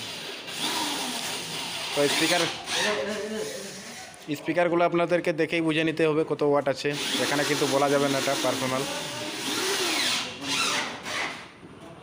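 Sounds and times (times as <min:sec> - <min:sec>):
cordless drill driving screws: 0:00.0 - 0:03.0, 0:06.9 - 0:11.4.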